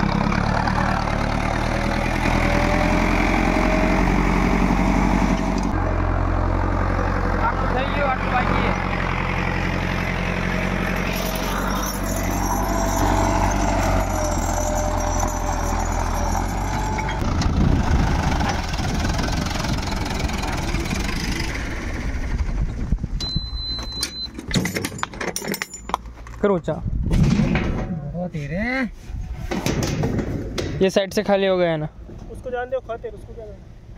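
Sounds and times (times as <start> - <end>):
tractor diesel engine running: 0.0 - 26.2
knocks and clatter: 27.1 - 28.0, 29.5 - 31.0.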